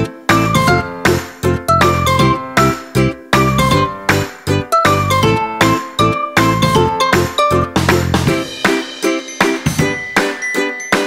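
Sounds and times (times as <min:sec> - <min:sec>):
upbeat music with strong bass: 0:00.0 - 0:11.0.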